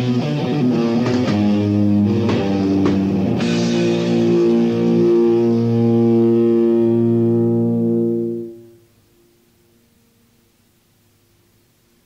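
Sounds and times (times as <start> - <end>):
sustained metal guitar chord: 0.0 - 9.3.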